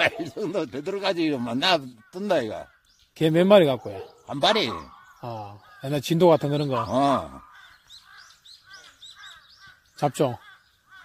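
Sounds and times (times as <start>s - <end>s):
birds calling faintly: 0.0s - 11.0s.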